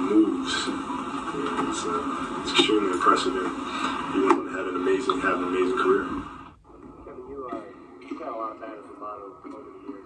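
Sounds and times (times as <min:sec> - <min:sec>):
speech from a video: 0:00.0 - 0:10.0.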